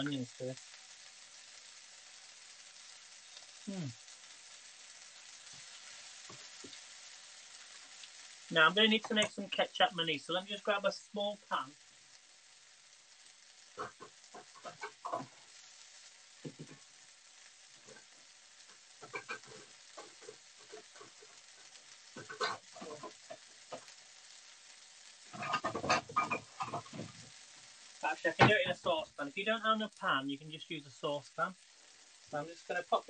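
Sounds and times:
food sizzling in a frying pan: 0.0 - 33.0
cookware clattering: 19.0 - 21.2, 25.3 - 27.2.

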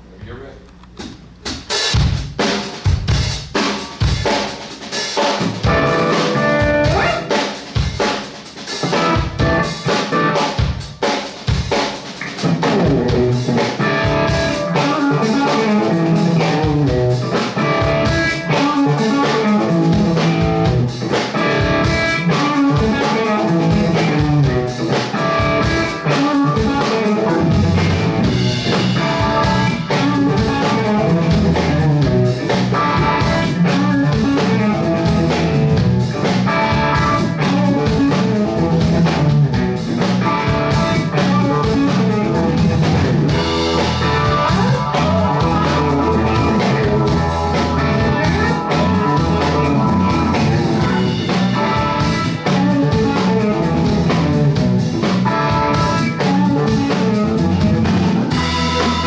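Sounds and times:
blues-rock band playing: 1.4 - 59.0
electric guitar lead lines: 5.1 - 59.0.

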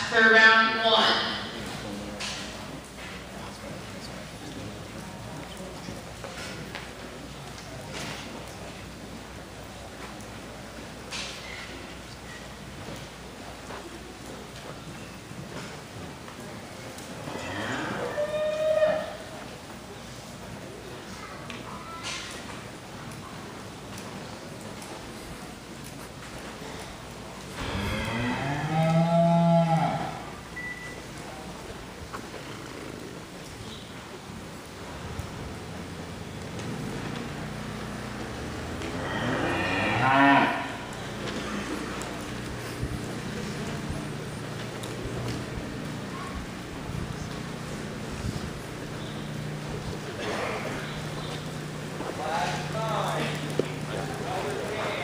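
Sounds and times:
cow mooing: 27.6 - 30.3, 38.8 - 42.0.

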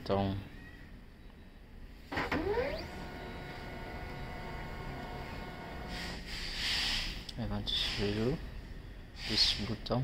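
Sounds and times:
printer whine and running hum: 2.1 - 6.2.

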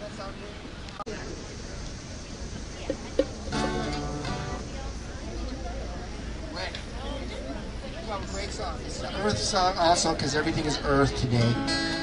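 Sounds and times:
acoustic guitar chord strummed: 3.5 - 4.7, 11.2 - 12.0.

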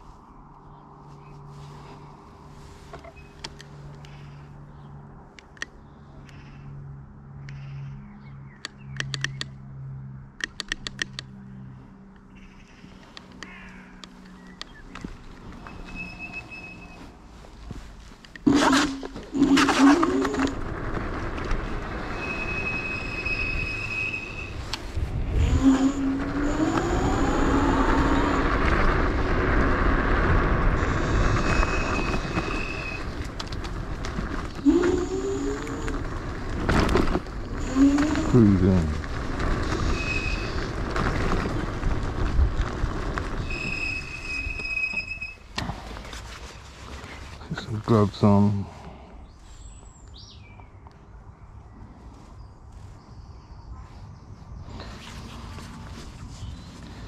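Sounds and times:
road noise: 0.0 - 57.0
sharp clicks: 8.6 - 9.6, 10.4 - 11.4
low hum: 13.8 - 47.6
wind rush on microphone: 20.0 - 45.2
electric motor whine: 25.1 - 33.4, 34.4 - 36.6.

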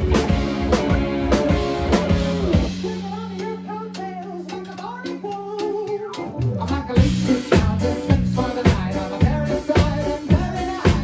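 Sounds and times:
drum kit beat: 0.0 - 11.0
live band playing: 0.0 - 11.0.

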